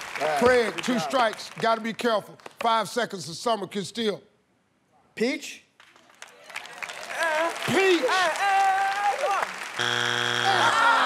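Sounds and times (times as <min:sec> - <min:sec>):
game show buzzer: 0:09.7 - 0:11.0
people laughing: 0:10.4 - 0:11.0
people shouting: 0:10.4 - 0:11.0.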